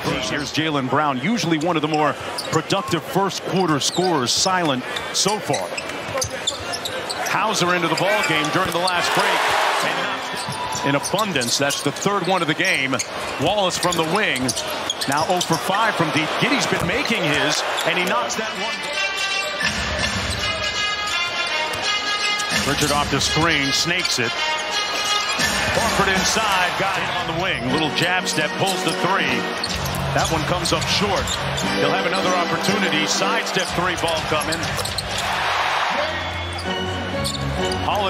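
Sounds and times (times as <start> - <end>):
arena crowd noise: 0.0 - 38.0.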